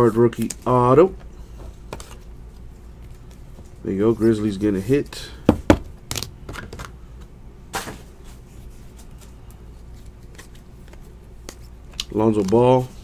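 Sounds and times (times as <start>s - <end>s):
cards rustling: 8.8s - 13.0s.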